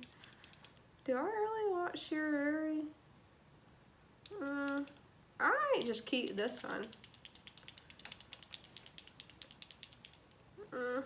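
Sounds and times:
fast small clicks: 0:00.0 - 0:00.9, 0:04.2 - 0:05.1, 0:05.7 - 0:10.5.

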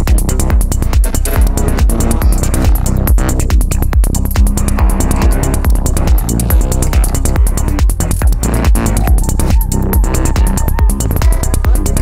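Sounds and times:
psytrance electronic music: 0:00.0 - 0:12.0.

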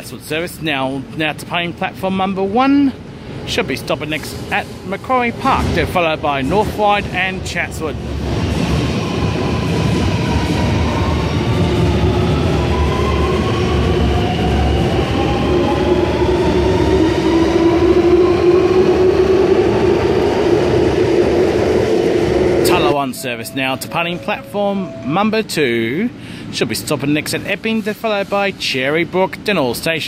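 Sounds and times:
rumble of train wheels: 0:00.0 - 0:30.0.

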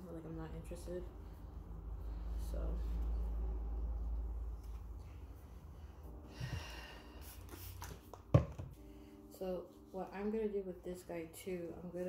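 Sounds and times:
low rumble: 0:00.0 - 0:07.0.

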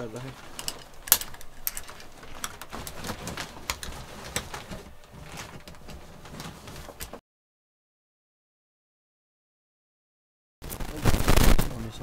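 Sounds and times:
metallic clicks and clinks: 0:00.5 - 0:02.1.

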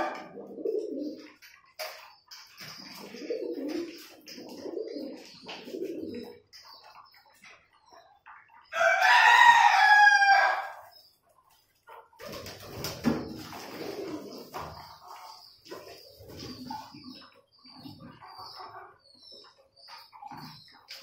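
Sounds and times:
pigeons cooing: 0:00.0 - 0:08.0, 0:12.2 - 0:21.0
rooster crowing: 0:08.8 - 0:10.8.

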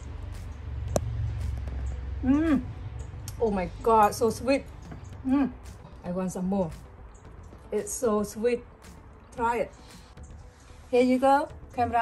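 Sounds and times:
woman humming: 0:02.2 - 0:02.8, 0:05.2 - 0:05.6.

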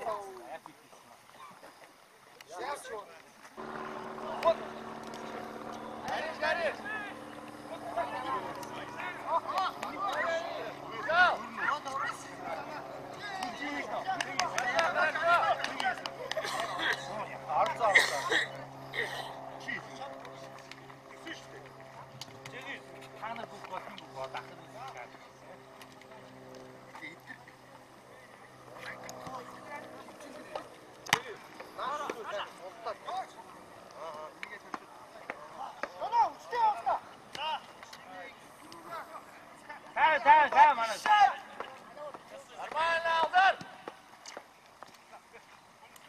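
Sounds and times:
steady low hum: 0:03.5 - 0:44.7
players shouting calls: 0:03.6 - 0:26.0, 0:27.0 - 0:44.1.

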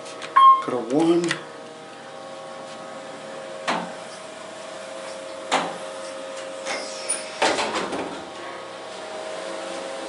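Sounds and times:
elevator humming: 0:00.2 - 0:06.8, 0:08.0 - 0:10.0.

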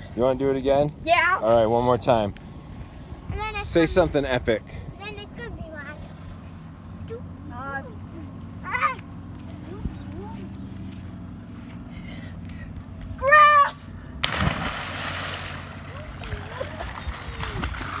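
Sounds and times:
child shouting: 0:13.2 - 0:14.0
body splashing into water: 0:14.2 - 0:18.0
churning water: 0:14.2 - 0:18.0.

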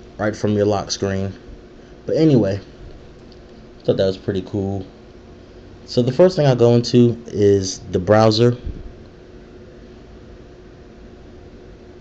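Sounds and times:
faint hum: 0:00.0 - 0:12.0
room tone hiss: 0:00.0 - 0:12.0.

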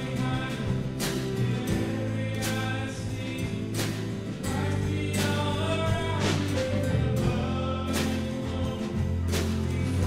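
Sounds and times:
drum accents: 0:00.0 - 0:10.0
singing: 0:00.0 - 0:10.0
worship band playing: 0:00.0 - 0:10.0.

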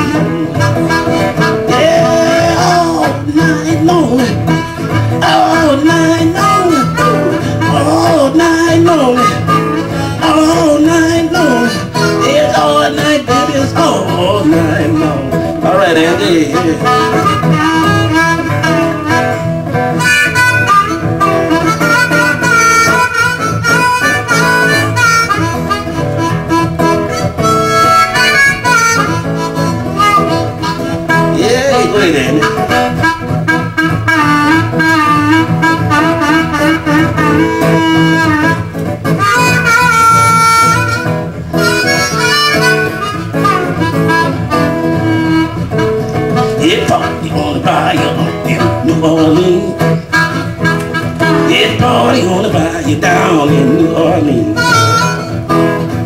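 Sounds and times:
acoustic guitar: 0:00.0 - 0:56.0
blues harmonica wailing: 0:00.0 - 0:56.0.

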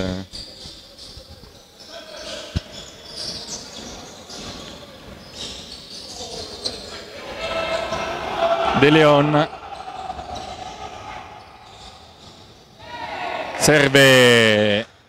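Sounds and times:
players calling out: 0:01.8 - 0:14.8.

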